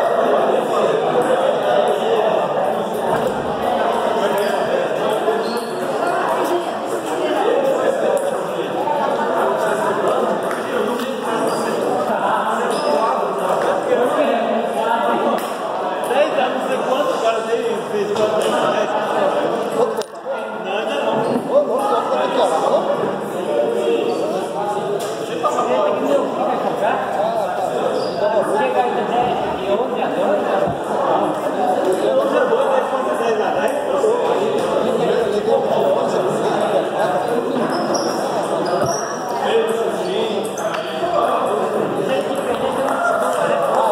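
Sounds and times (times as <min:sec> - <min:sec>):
overlapping voices echoing in hall: 0:00.0 - 0:43.9.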